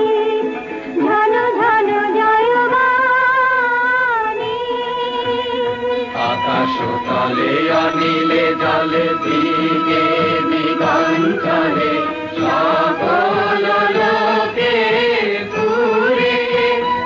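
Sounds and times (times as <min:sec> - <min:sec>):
devotional chanting with instruments: 0:00.0 - 0:17.0
light rhythmic strikes: 0:04.5 - 0:17.0.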